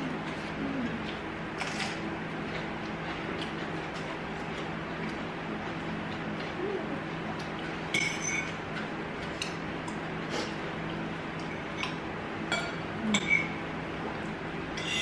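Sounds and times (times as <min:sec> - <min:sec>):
cutlery clinking on bowls: 0:07.9 - 0:08.6, 0:11.8 - 0:13.6.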